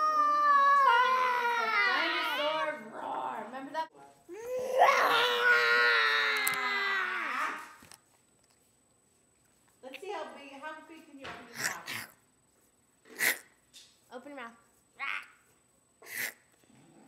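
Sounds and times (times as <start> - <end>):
child crying out high-pitched: 0.0 - 2.4, 4.4 - 7.7.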